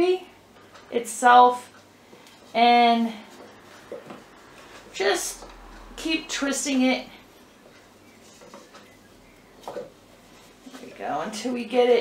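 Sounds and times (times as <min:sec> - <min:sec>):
rope handling ticks and rustles: 0:07.6 - 0:11.3.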